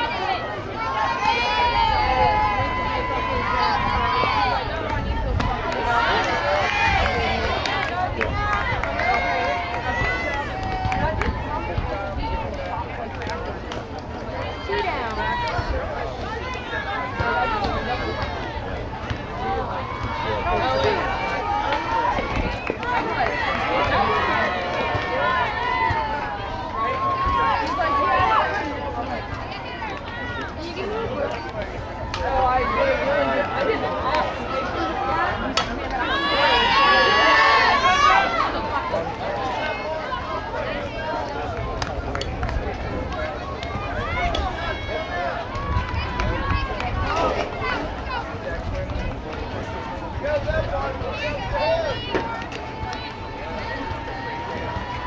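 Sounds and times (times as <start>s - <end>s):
crowd shouting and cheering: 0.0s - 55.0s.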